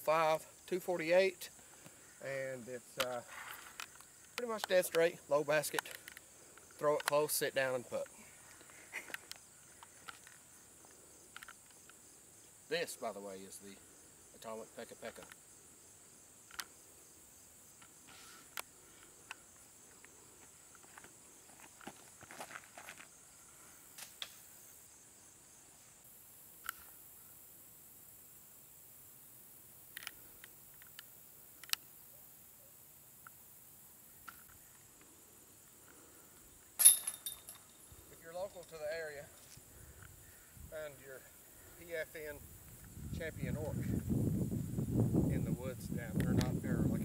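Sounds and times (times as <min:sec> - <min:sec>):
insects chirring: 0:00.0 - 0:47.0
small clicks and rustles: 0:08.0 - 0:12.0
disc striking metal chains: 0:36.8 - 0:38.8.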